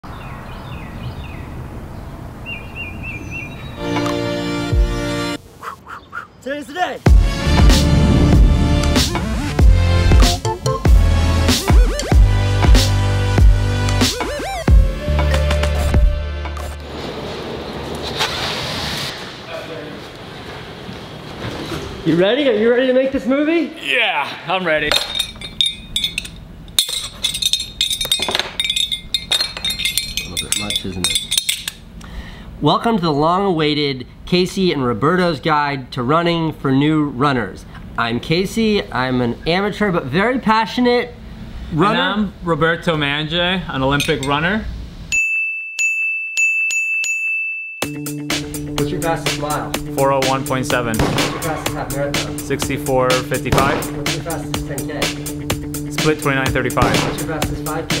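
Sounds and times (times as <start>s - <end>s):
birds chirping: 0.0s - 4.4s, 5.6s - 7.0s
metal medals clinking: 24.9s - 31.8s.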